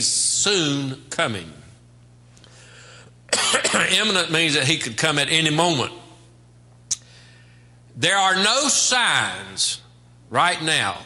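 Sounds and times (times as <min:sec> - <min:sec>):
man speaking: 0:00.0 - 0:01.7, 0:03.6 - 0:06.2, 0:08.0 - 0:11.0
man coughing: 0:03.3 - 0:04.0.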